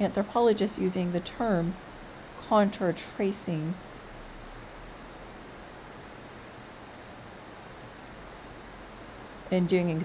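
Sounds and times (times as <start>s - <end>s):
room tone and microphone hiss: 0.0s - 10.0s.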